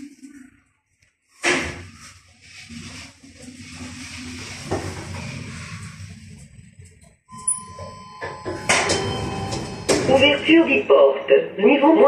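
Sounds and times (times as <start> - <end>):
lift car rumbling: 3.5 - 11.2
electronic beep: 7.3 - 10.9
rush of noise from doors opening: 7.4 - 10.8.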